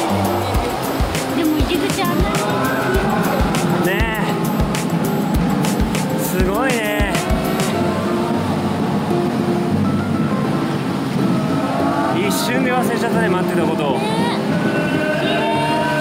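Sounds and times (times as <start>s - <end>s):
voices singing with echo: 0.0s - 8.7s, 11.5s - 16.0s.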